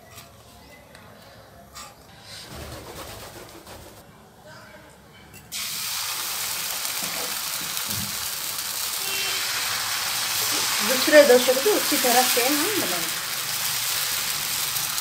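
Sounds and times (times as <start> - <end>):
batter sizzling on a griddle: 5.5 - 15.0.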